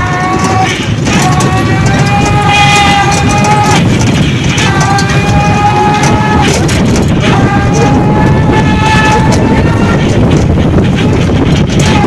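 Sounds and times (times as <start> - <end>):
vehicle horn: 0.0 - 4.0, 4.6 - 10.4
road rumble and wind: 0.0 - 12.0.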